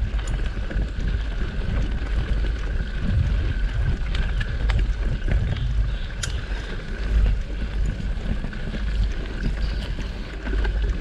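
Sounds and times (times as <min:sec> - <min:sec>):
bike clicks and rattles: 0:00.0 - 0:11.0
wind noise on microphone: 0:00.0 - 0:11.0.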